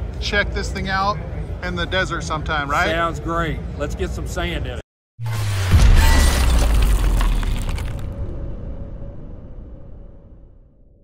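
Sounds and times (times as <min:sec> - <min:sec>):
crash with deep falling tone: 0:05.2 - 0:11.0.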